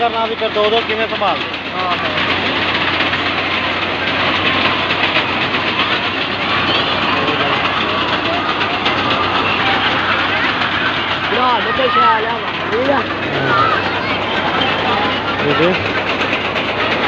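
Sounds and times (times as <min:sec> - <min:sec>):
crowd voices: 0:00.0 - 0:17.0
swing ride mechanical drone and rattling: 0:00.0 - 0:17.0.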